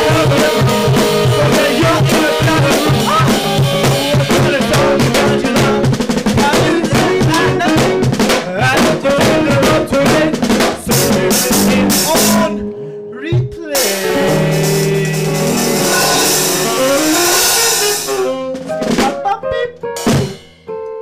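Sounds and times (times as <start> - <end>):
electric bass: 0.0 - 8.1, 14.0 - 18.4
drum kit with rimshots: 0.0 - 12.6, 13.4 - 21.0
person singing into a microphone: 0.0 - 19.8
electric guitar: 0.0 - 21.0.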